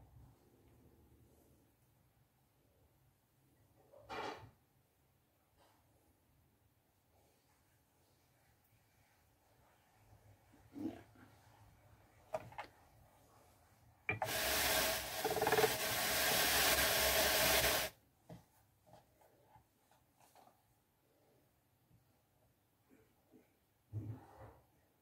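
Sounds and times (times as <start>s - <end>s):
drum carder rushing: 14.1s - 17.9s.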